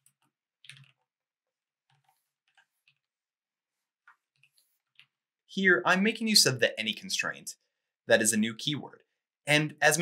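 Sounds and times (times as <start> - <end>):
soft computer keyboard clicks: 0.0 - 1.0.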